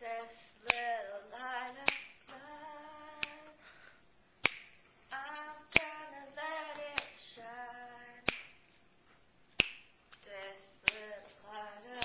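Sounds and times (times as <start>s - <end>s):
woman singing a cappella: 0.0s - 3.6s, 5.1s - 8.3s, 10.2s - 12.0s
finger snaps: 1.8s - 2.4s, 3.2s - 3.5s, 4.4s - 4.8s, 5.7s - 6.0s, 6.8s - 7.2s, 8.2s - 8.6s, 9.6s - 10.2s, 10.9s - 11.1s.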